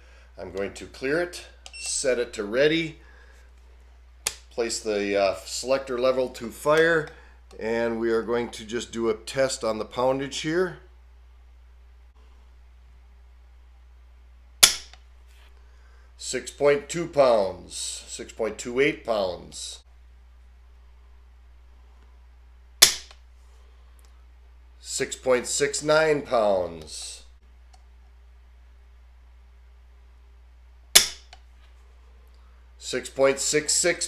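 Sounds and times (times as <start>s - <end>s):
trigger hammer metallic snap: 14.6s - 15.0s, 22.8s - 23.2s, 31.0s - 31.4s
faint click: 27.7s - 28.2s.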